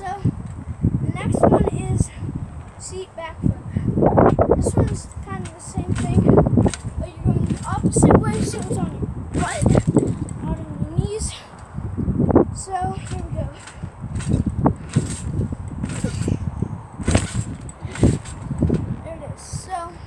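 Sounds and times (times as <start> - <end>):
muffled trampoline thuds: 0.0 - 20.0
background voices: 1.0 - 11.6, 12.6 - 20.0.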